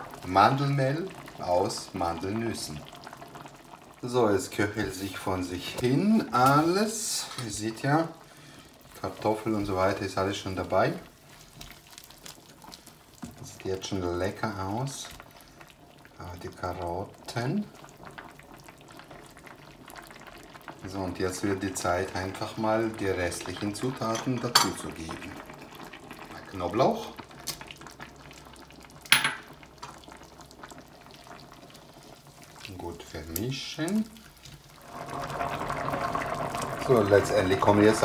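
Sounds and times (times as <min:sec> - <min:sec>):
broth simmering with small pops: 0:00.0 - 0:38.0
soup bubbling at a boil: 0:00.0 - 0:38.0.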